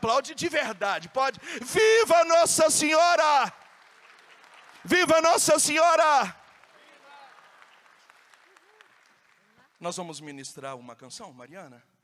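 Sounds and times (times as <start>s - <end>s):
faint applause: 1.4s - 10.0s.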